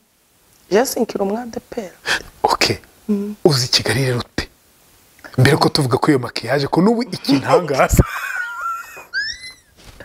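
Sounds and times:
woman laughing in squeals: 8.0s - 9.8s.

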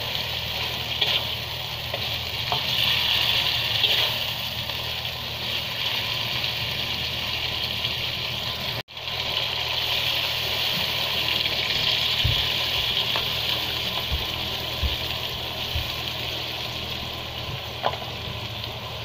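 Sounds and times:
chili paste sizzling in a wok: 0.0s - 19.0s.

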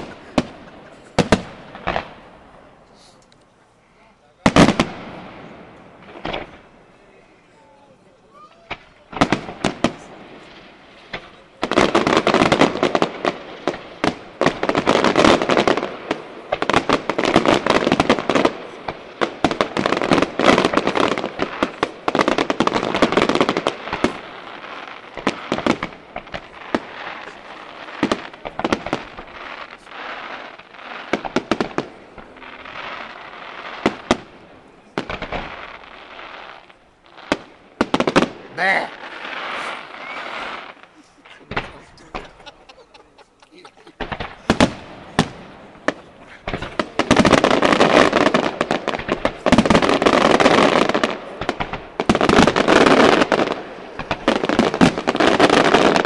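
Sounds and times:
fireworks bursts and crackle: 0.0s - 3.5s, 4.2s - 56.0s.

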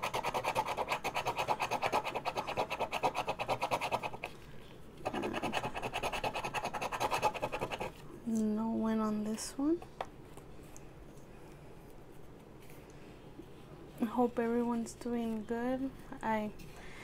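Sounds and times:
scratching lottery ticket: 0.0s - 4.4s, 5.0s - 8.0s.

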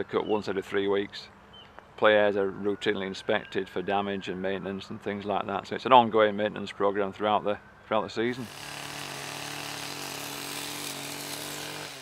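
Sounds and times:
leaf blower engine running: 8.4s - 12.0s.

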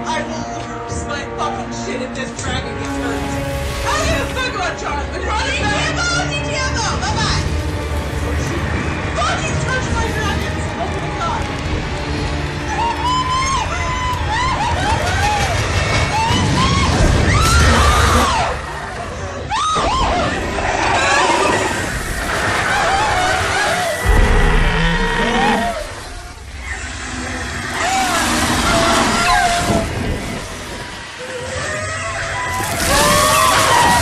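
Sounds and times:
loud rush of noise: 21.2s - 31.2s.

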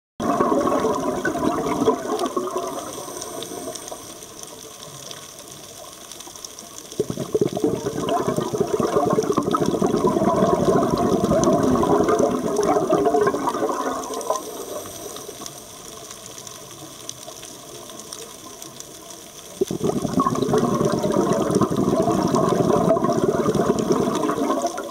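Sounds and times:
underwater bubbling: 0.2s - 24.9s
quiet hiss: 0.5s - 7.2s, 10.2s - 24.9s.

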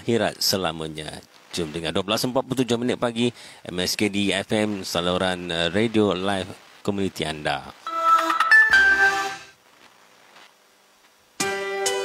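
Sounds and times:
electronic radio jingle: 7.8s - 9.6s.

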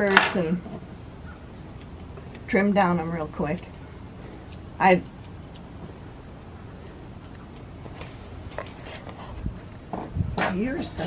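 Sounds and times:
low background noise: 0.0s - 11.0s
scissors snipping hair: 1.7s - 8.8s.

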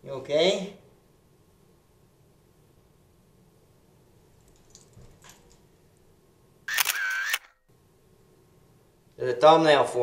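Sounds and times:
camera shutter: 6.7s - 7.6s.

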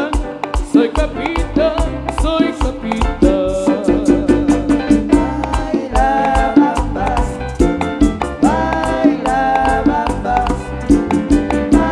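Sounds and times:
latin dance band music: 0.0s - 11.9s.

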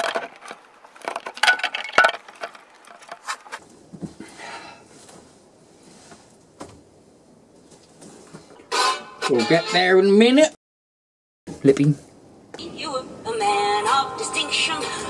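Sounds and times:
clothing rustling: 2.8s - 8.6s.

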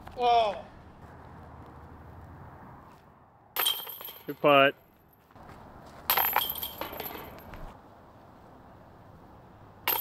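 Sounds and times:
disc hitting basket chains: 3.6s - 4.5s, 6.1s - 7.5s.

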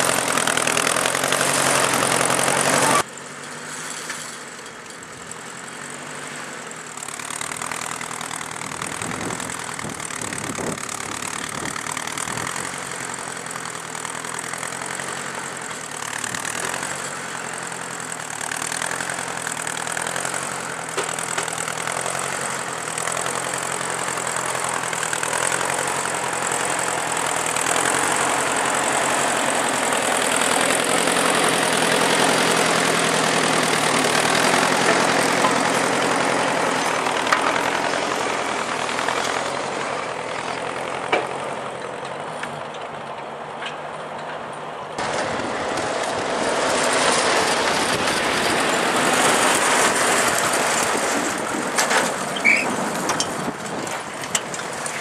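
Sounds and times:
tractor engine under load: 0.0s - 55.0s.

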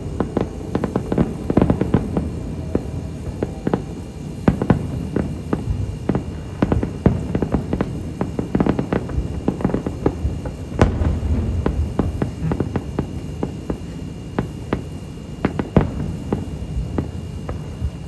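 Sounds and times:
fireworks booming and crackling: 0.0s - 18.0s.

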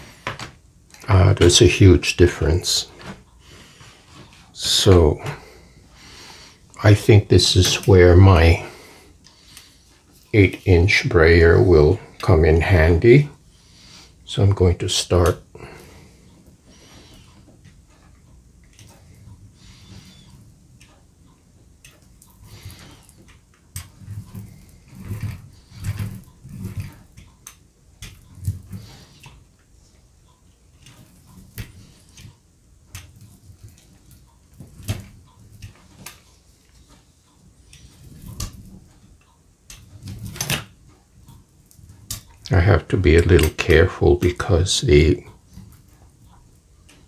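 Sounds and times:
rubber roller rolling over wet paint: 22.1s - 27.3s.

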